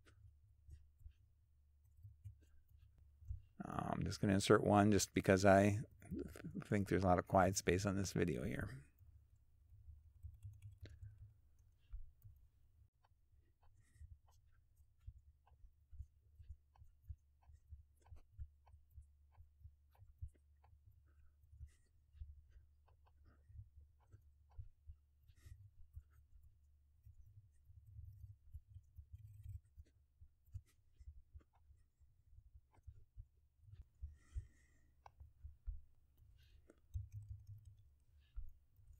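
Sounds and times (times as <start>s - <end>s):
keyboard typing: 36.2s - 38.9s.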